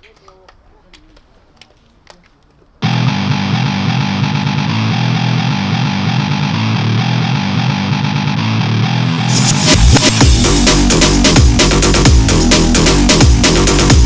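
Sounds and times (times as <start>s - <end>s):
distorted electric guitar music: 2.8s - 14.0s.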